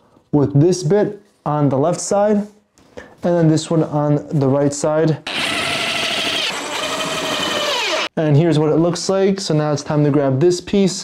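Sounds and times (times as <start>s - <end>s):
cordless drill motor whine: 5.3s - 8.1s.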